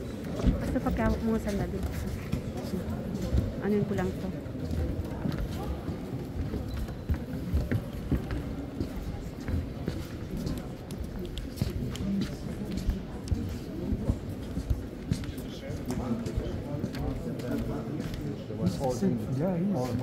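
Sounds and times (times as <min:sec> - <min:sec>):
murmur of voices echoing: 0:00.0 - 0:20.0
footsteps on stone floor: 0:00.2 - 0:18.4.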